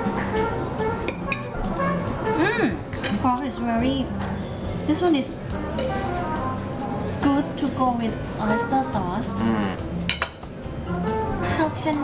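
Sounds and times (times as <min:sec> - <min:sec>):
soft background music: 0:00.0 - 0:12.0
cutlery clinking on plates: 0:05.8 - 0:06.2, 0:10.1 - 0:10.5.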